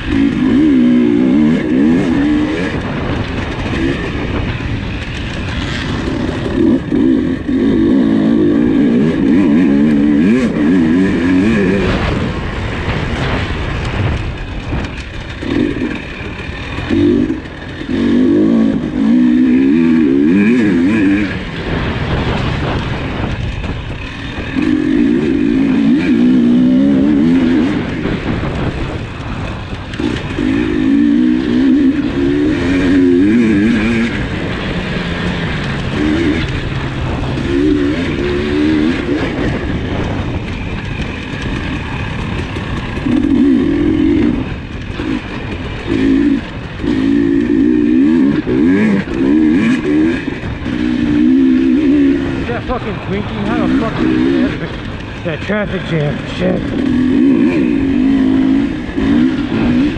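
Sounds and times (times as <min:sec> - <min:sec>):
dirt bike engine revving hard: 0:00.0 - 0:59.9.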